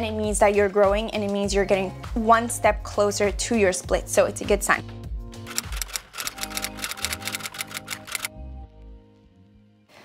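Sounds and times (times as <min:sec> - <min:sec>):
background music: 0:00.0 - 0:10.0
typewriter key clicks: 0:05.5 - 0:08.3.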